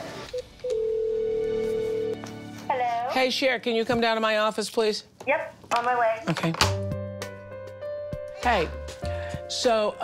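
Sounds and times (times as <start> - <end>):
steady telephone tone: 0.4 - 2.2.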